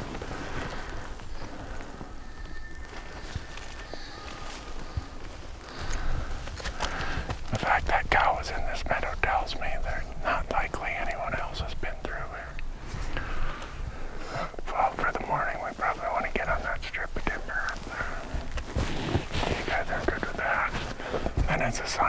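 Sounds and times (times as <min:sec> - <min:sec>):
people whispering: 0:06.7 - 0:12.6, 0:13.3 - 0:18.5, 0:19.2 - 0:22.0.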